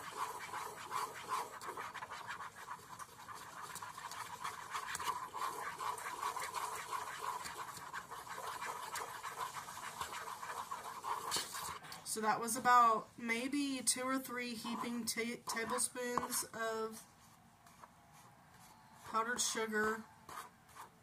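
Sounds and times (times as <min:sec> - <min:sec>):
spoon scraping around a bowl: 0:00.0 - 0:11.8, 0:13.6 - 0:21.0.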